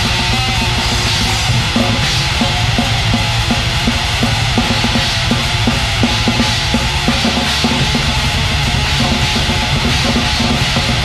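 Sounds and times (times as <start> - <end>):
heavily distorted guitars: 0.0 - 11.0
rapid drumming: 0.0 - 11.0.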